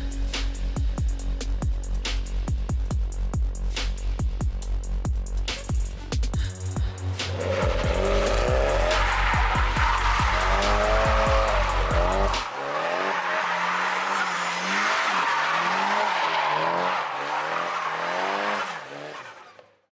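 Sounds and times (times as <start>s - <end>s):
bass-heavy music with a beat: 0.0s - 13.4s
car engine revving: 7.0s - 19.8s
tires squealing: 7.2s - 19.9s.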